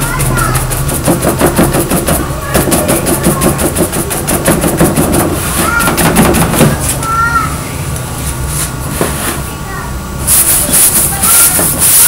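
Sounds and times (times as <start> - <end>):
paintbrush scrubbing a board: 0.0 - 6.8, 10.3 - 12.0.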